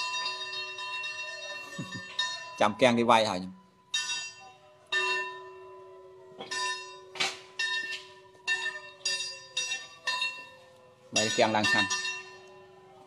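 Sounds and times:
bell ringing: 0.0s - 13.0s.

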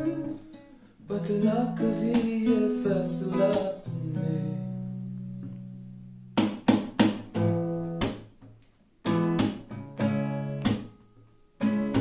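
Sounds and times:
acoustic guitar chord: 0.0s - 6.4s
quick guitar strums: 0.0s - 8.4s, 9.0s - 12.0s.

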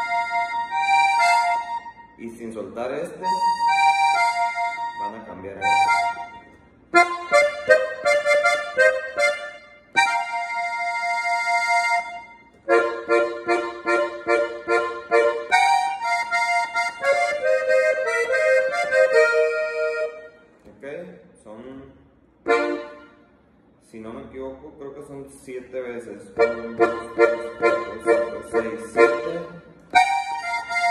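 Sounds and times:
piano accordion melody: 0.0s - 20.7s, 22.4s - 23.6s, 26.0s - 30.9s.

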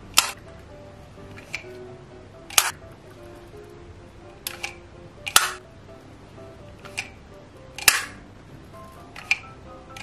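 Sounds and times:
soft background music: 0.0s - 10.0s
plastic toy grabber clacking: 2.5s - 2.8s, 4.4s - 5.6s, 6.8s - 7.2s, 7.8s - 8.2s, 9.1s - 10.0s.

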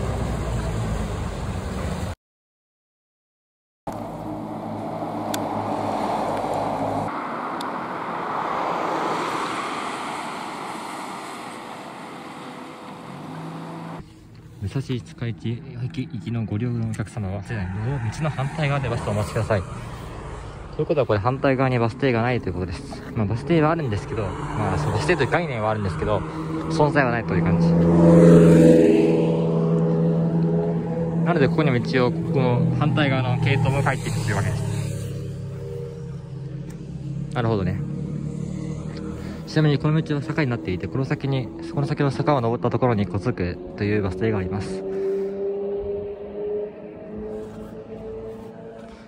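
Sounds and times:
road traffic passing: 0.0s - 2.2s, 3.9s - 49.0s
vehicle engine humming: 3.9s - 49.0s.

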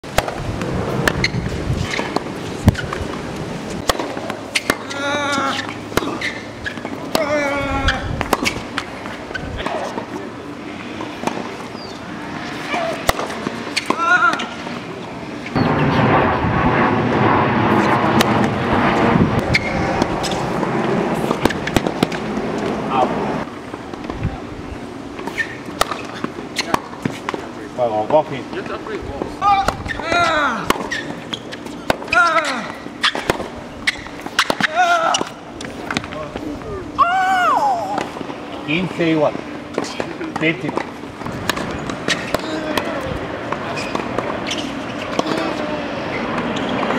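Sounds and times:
tennis racket hitting ball: 3.8s - 7.5s, 8.2s - 10.1s, 11.0s - 14.8s, 21.2s - 22.7s, 25.2s - 27.4s, 29.5s - 36.1s, 39.7s - 45.6s
people talking: 4.8s - 5.7s, 7.2s - 8.2s, 26.6s - 30.8s, 32.1s - 32.7s, 42.2s - 44.3s, 45.0s - 46.9s.

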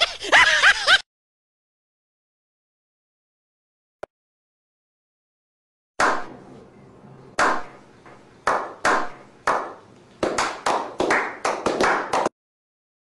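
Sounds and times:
hand claps with echo: 7.4s - 7.8s, 8.4s - 12.3s.

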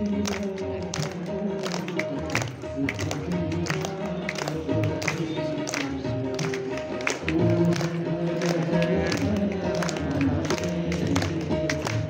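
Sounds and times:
devotional music sustained notes: 0.0s - 12.0s.

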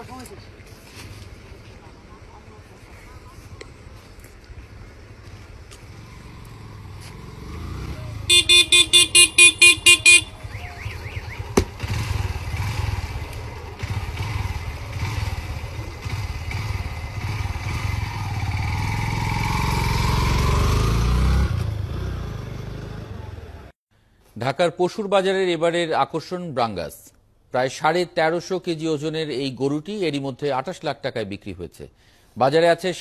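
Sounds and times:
vehicle engine running: 4.0s - 20.8s
vehicle horn beeping: 8.3s - 11.5s.

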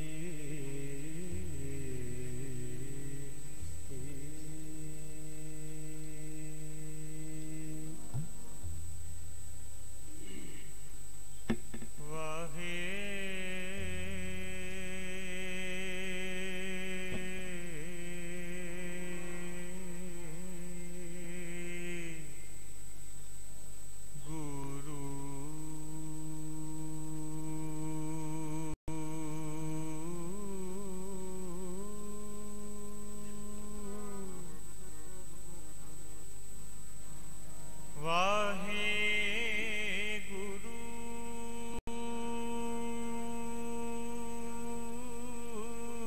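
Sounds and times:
man singing a long note: 0.0s - 8.8s, 10.1s - 10.8s, 12.0s - 22.6s, 24.2s - 36.1s, 37.6s - 46.0s
harmonium notes: 36.9s - 46.0s.

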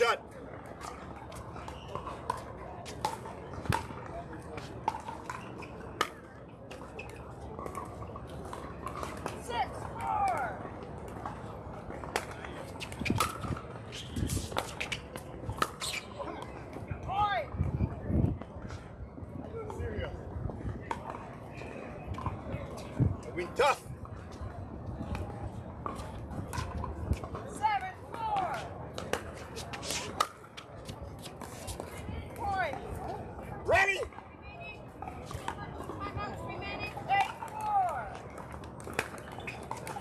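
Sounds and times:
pickleball paddles hitting ball: 1.6s - 16.0s, 37.2s - 40.0s.

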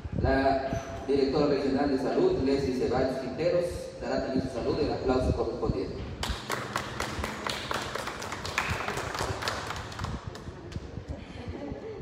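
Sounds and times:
people clapping: 6.2s - 11.2s.

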